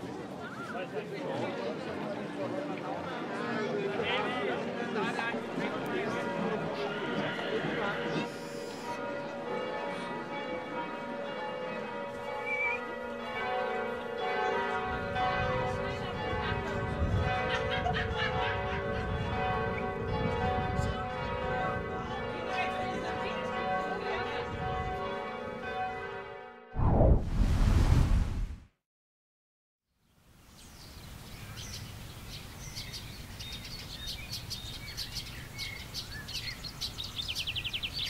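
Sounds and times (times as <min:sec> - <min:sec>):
crowd voices: 0:00.0 - 0:08.7
church bells ringing: 0:03.2 - 0:26.6
low rumble: 0:26.8 - 0:28.6.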